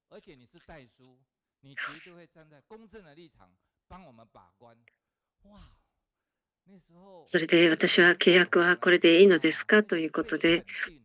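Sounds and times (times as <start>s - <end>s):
faint spoken syllables: 1.8s - 2.2s.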